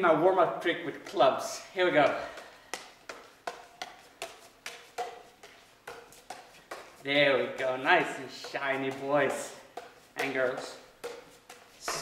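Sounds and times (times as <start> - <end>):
juggling clubs slapping into hands: 0.0 - 12.0.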